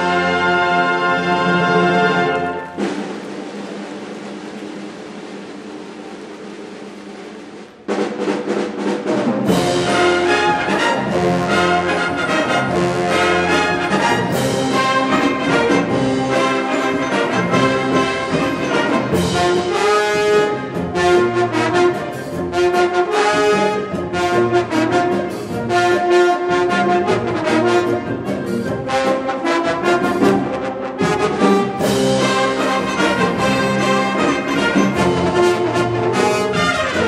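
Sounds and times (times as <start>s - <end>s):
wind band playing: 0.0s - 6.8s, 7.9s - 37.0s
percussion strikes: 30.0s - 37.0s.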